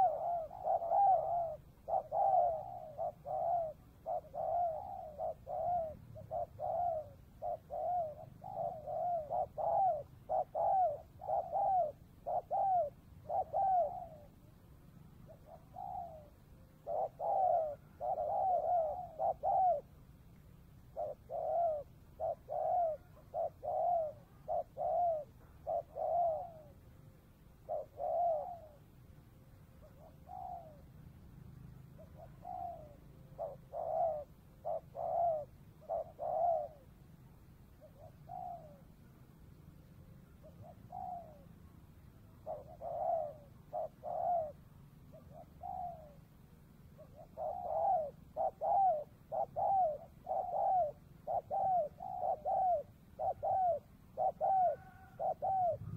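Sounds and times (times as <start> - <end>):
dove cooing: 0.0 - 55.9.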